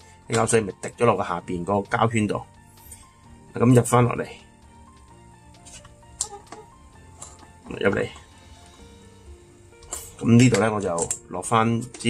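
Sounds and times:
quiet background music: 0.0 - 12.0
small parts clicking: 9.8 - 12.0.

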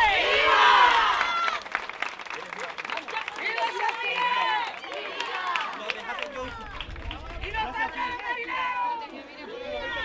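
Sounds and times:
people clapping: 0.0 - 9.4
crowd calling out and talking: 2.7 - 10.0.

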